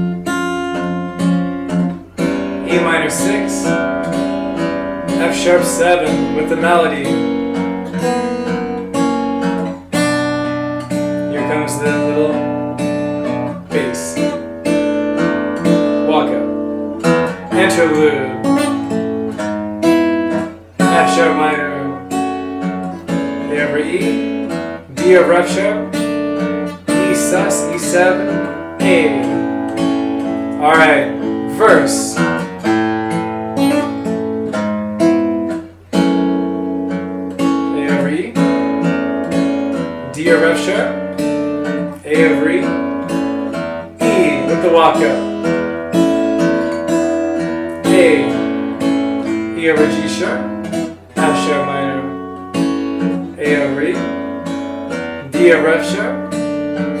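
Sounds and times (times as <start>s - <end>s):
fingerpicked acoustic guitar: 0.0s - 57.0s.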